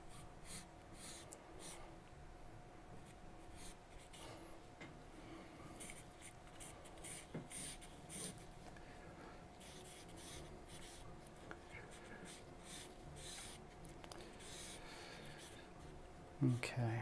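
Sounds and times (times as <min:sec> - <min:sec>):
pencil scratching on paper: 0:00.0 - 0:01.8, 0:03.0 - 0:04.3, 0:05.8 - 0:08.5, 0:09.6 - 0:15.7.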